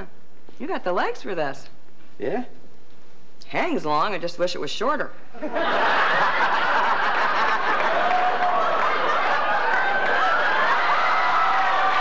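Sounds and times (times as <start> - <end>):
audience laughing: 5.4 - 11.3.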